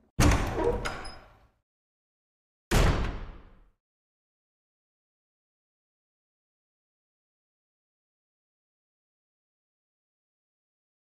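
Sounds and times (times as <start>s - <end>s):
heavy wooden door banging: 0.2s - 1.3s.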